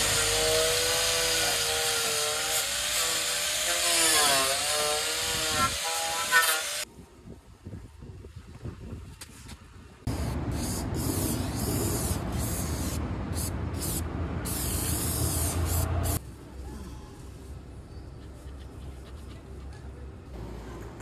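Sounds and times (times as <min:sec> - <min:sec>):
angle grinder on steel: 0:00.0 - 0:06.8.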